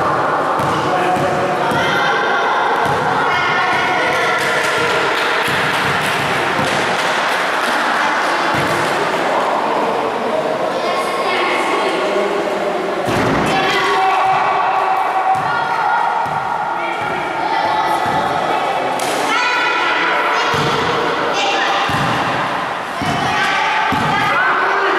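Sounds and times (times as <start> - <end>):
basketball bouncing: 16.2 - 16.4, 21.9 - 22.4, 23.9 - 24.3
children shouting and cheering: 16.8 - 21.9.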